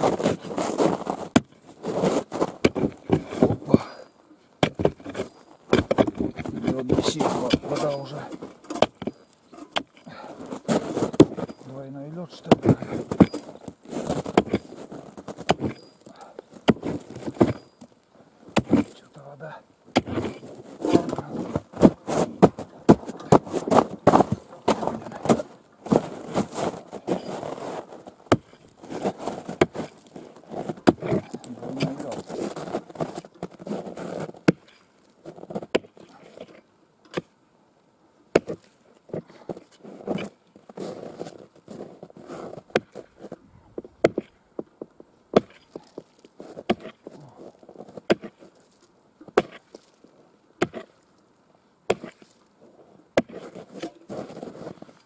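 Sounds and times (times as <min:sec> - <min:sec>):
broken ice crunching and scraping: 0:00.0 - 0:37.3, 0:38.4 - 0:51.0, 0:51.9 - 0:55.0
hatchet chopping ice: 0:16.6 - 0:17.7, 0:18.6 - 0:18.9, 0:28.3 - 0:28.6, 0:38.4 - 0:38.6, 0:45.3 - 0:46.0, 0:48.0 - 0:48.3, 0:50.6 - 0:50.9, 0:51.9 - 0:52.2, 0:53.2 - 0:53.9.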